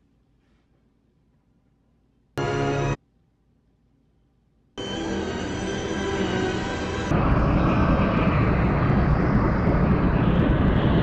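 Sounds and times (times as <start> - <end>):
deep rushing roar: 4.8 - 11.0.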